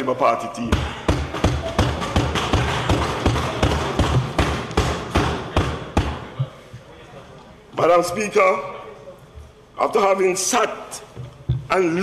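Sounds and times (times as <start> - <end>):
thumping on wooden desks: 0.7 - 6.3
light crowd murmur: 5.1 - 9.8.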